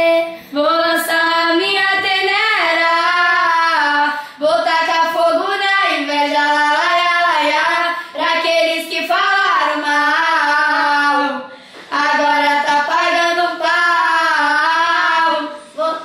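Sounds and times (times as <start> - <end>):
girls singing: 0.0 - 16.0.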